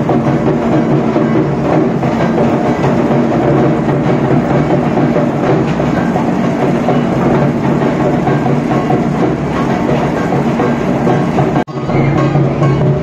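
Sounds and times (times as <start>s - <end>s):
procession drumming and music: 0.0s - 13.0s.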